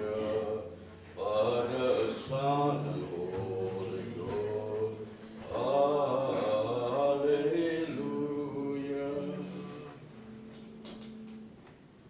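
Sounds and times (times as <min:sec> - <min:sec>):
voices singing slow chant: 0:00.0 - 0:10.8.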